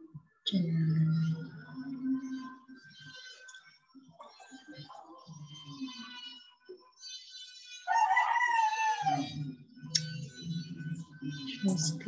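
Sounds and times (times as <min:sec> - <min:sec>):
faint background music: 0:00.0 - 0:12.0.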